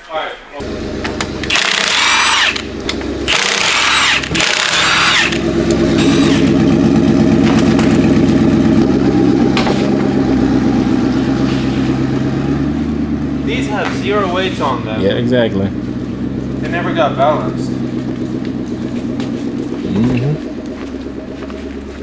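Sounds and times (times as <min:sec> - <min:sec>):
car engine running: 0:00.6 - 0:22.0
impact wrench hammering: 0:01.0 - 0:06.6.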